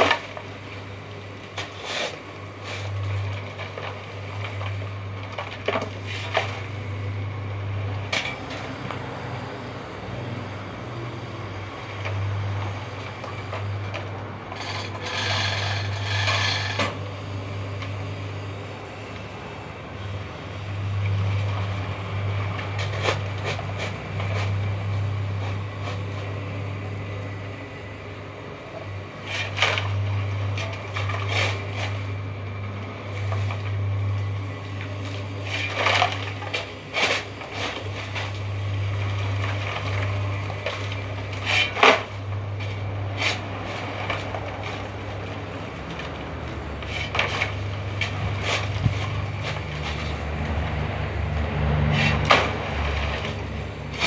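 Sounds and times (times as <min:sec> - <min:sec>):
concrete mixer humming: 0:00.0 - 0:54.0
scrapes and knocks: 0:12.0 - 0:17.1, 0:33.1 - 0:54.0.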